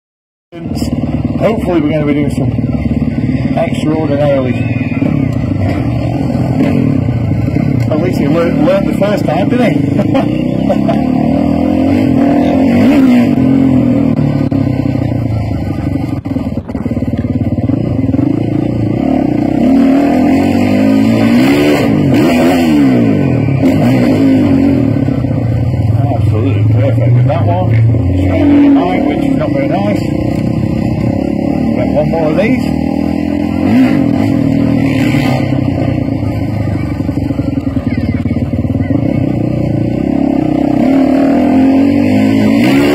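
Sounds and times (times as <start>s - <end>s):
motorbike engine revving: 0.6s - 42.9s.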